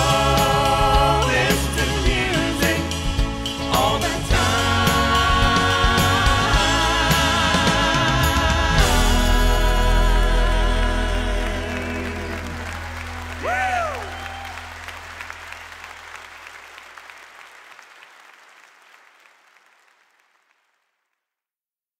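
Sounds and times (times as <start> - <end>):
audience applauding: 10.7 - 21.1
loud whoop: 12.2 - 15.0.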